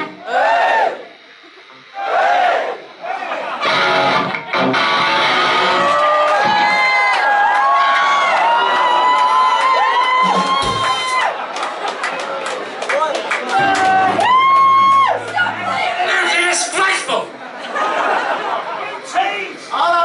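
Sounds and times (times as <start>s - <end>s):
rock band music: 0.0s - 6.8s, 13.4s - 17.6s
crowd cheering and shouting: 0.0s - 20.0s.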